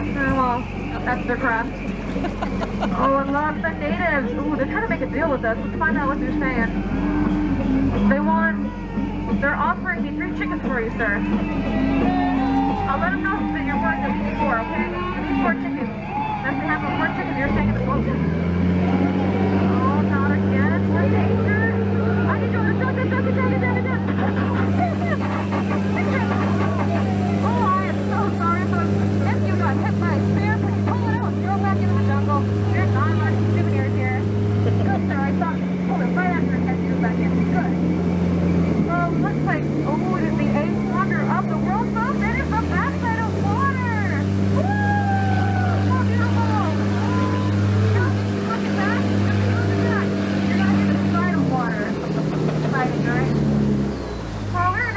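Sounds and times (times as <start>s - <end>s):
boat motor droning: 0.0s - 54.9s
passengers chattering: 0.0s - 54.9s.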